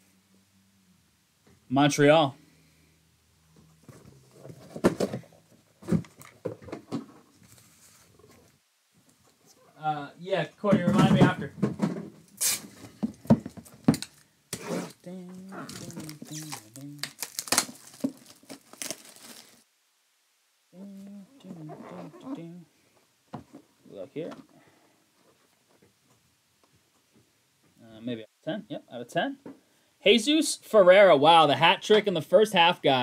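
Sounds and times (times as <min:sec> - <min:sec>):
cardboard boxes being handled: 0:03.8 - 0:08.5, 0:12.7 - 0:19.6
man's wordless voice: 0:09.8 - 0:11.6.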